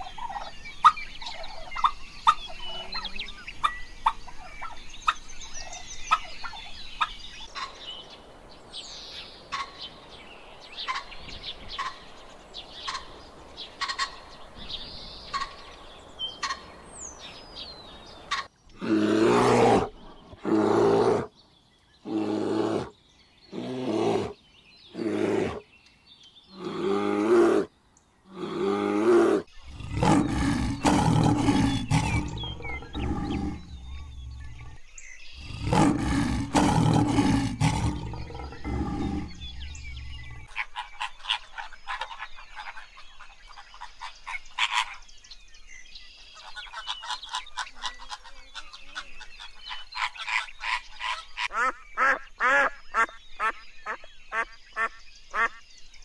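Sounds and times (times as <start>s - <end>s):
bear vocalizations: 18.7s - 21.3s, 22.0s - 25.6s, 26.5s - 27.7s, 28.3s - 34.8s, 35.4s - 40.6s
lion growling: 28.3s - 34.8s, 35.4s - 40.5s.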